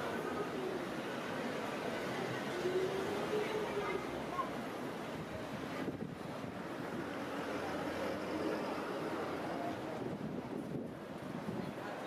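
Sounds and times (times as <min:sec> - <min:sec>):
traffic passing: 0:00.0 - 0:12.0.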